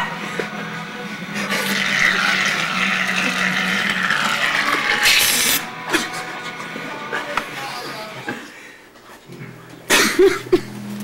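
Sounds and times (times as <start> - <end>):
aerosol can spraying: 5.0 - 5.6.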